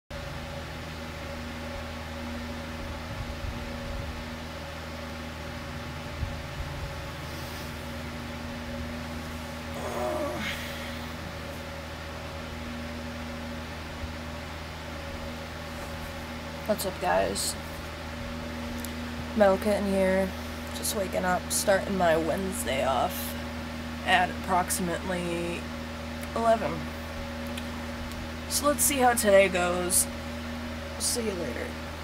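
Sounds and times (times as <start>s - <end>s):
fan or air conditioner hum: 0.1s - 32.0s.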